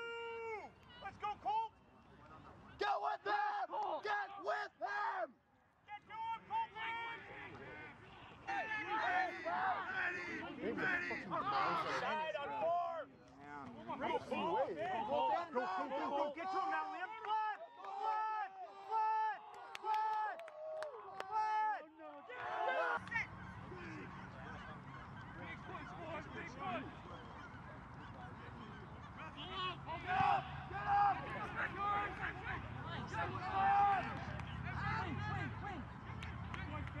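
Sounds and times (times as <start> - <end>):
people shouting: 2.8 - 5.3, 6.4 - 12.7, 14.9 - 24.0, 29.3 - 35.8
geese honking: 22.5 - 32.0.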